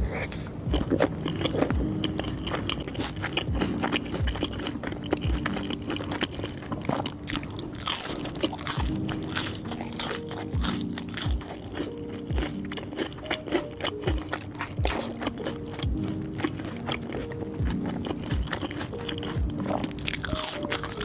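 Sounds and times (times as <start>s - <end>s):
bite into crunchy fry: 0.0s - 21.0s
chewing with wet mouth clicks: 0.1s - 21.0s.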